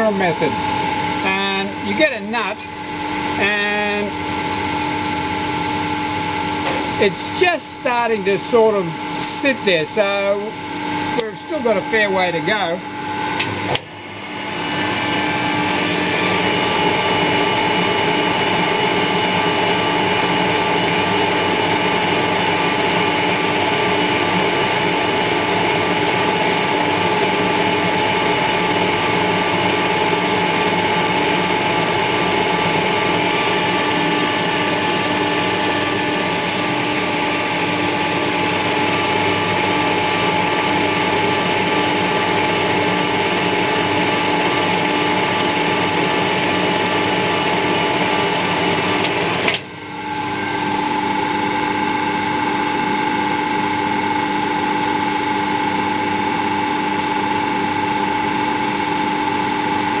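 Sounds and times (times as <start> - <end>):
metal lathe humming and whining: 0.0 - 60.0.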